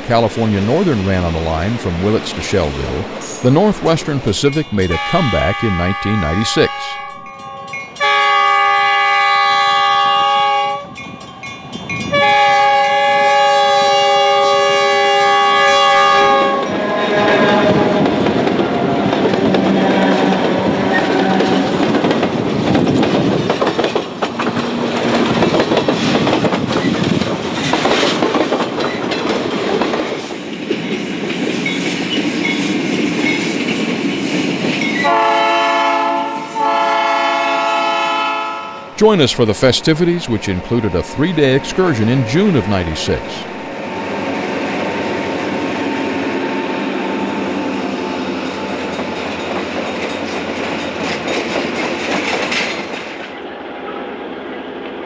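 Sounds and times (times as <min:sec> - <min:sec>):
train wheels rumbling on rails: 0:00.0 - 0:37.8, 0:38.9 - 0:55.0
locomotive air horn: 0:04.8 - 0:07.3, 0:08.0 - 0:11.0, 0:12.1 - 0:18.1, 0:35.0 - 0:39.1.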